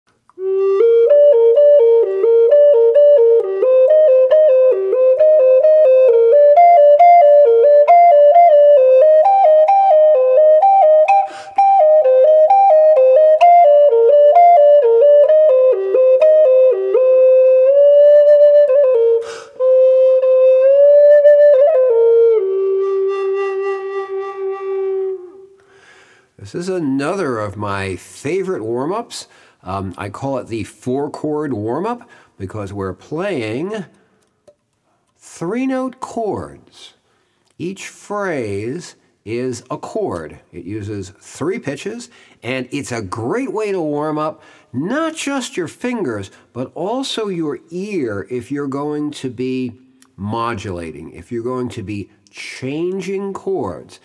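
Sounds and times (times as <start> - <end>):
native american flute playing: 0.4 - 25.6.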